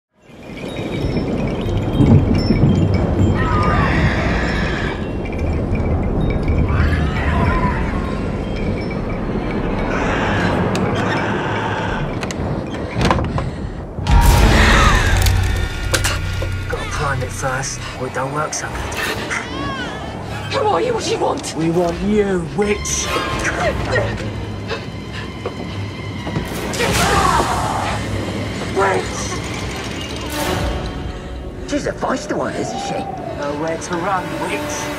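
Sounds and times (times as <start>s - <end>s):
film score and ambience: 0.2s - 34.9s
low rumbling drone: 13.8s - 19.4s.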